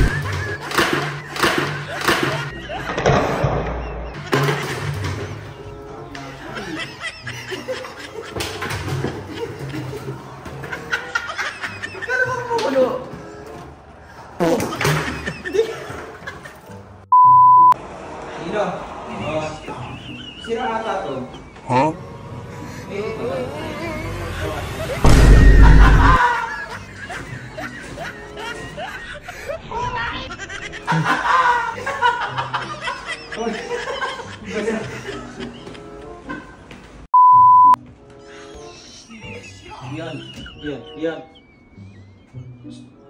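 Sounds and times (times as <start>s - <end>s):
quiet background music: 0.0s - 17.1s, 17.8s - 25.5s, 26.2s - 37.1s, 37.8s - 43.0s
electronic beep: 17.1s - 17.8s, 37.2s - 37.8s.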